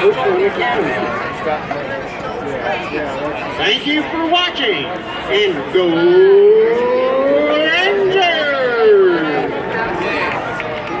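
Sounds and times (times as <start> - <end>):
call over stadium loudspeakers: 0.0 - 11.0
crowd chatter: 0.0 - 11.0.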